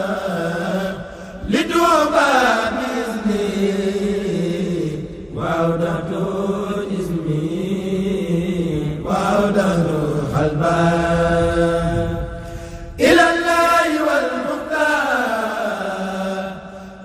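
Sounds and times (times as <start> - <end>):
voices chanting devotional poem: 0.0 - 17.0.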